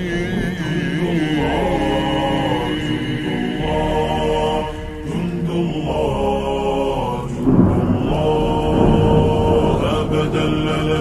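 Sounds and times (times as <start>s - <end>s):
reverberant layered voices chanting: 0.0s - 11.0s.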